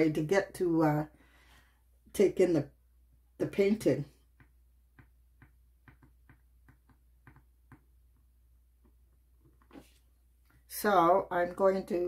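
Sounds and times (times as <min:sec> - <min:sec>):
pen tip tapping on hard board: 0:04.4 - 0:07.9.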